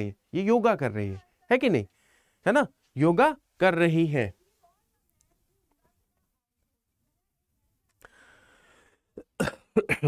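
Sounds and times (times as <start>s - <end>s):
faint breath: 1.9s - 2.4s, 8.0s - 9.2s
man coughing: 9.2s - 10.0s.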